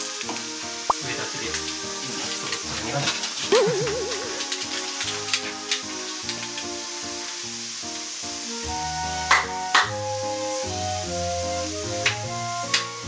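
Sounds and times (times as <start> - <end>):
background music: 0.0 - 13.0
sharp hand claps: 9.3 - 10.0, 12.0 - 13.0.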